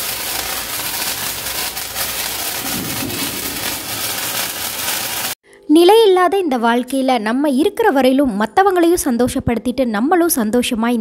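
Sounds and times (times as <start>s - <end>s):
sparkler fizzing: 0.0s - 5.4s.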